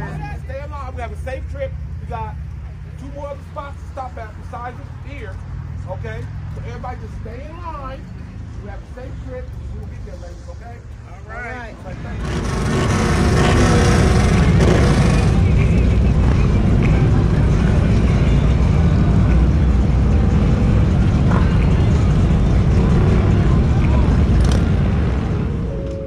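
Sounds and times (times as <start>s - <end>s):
motorcycle engines rumbling: 0.0s - 26.0s.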